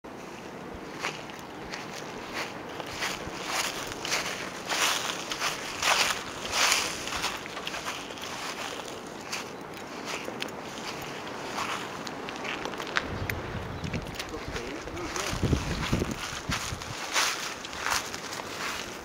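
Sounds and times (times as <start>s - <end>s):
footsteps swishing through grass: 0.2s - 19.0s
wind noise on microphone: 0.6s - 19.0s.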